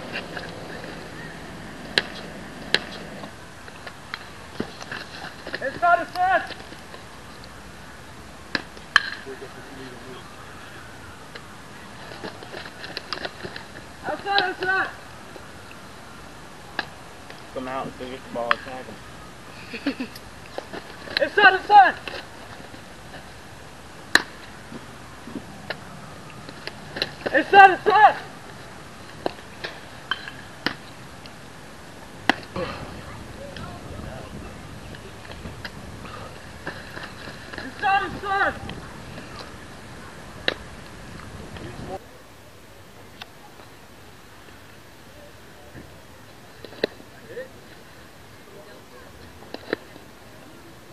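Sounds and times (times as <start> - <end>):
outdoor background noise: 0.0 - 50.9
person shouting high-pitched: 27.3 - 28.2, 37.8 - 38.6.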